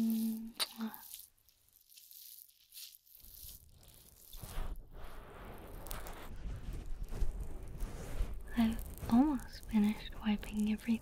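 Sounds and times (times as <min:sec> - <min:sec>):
crackly rustling close to microphone: 0:00.0 - 0:11.0.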